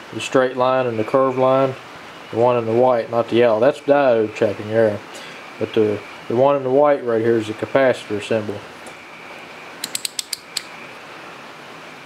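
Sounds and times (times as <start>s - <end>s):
rotary switch clicking: 9.8s - 10.7s.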